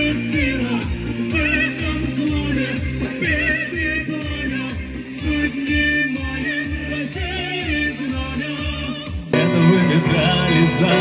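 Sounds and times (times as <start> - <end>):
instrumental accompaniment: 0.0 - 11.0
man singing into a microphone: 0.0 - 11.0.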